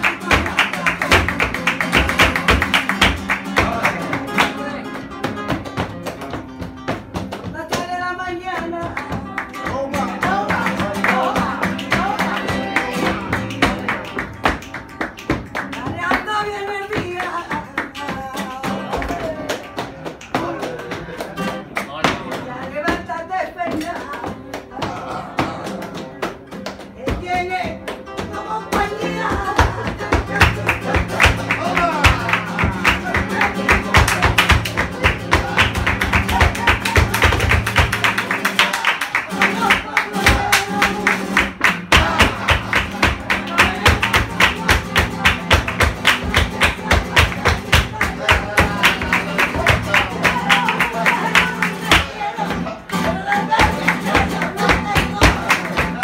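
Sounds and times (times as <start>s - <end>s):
rhythmic hand-clapping: 0.0s - 56.0s
person singing: 7.5s - 21.5s, 27.0s - 56.0s.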